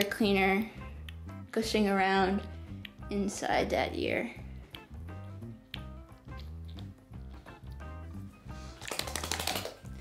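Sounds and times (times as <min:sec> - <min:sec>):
music with steady bass line: 0:00.3 - 0:08.8
dog shaking its ears: 0:08.8 - 0:09.8.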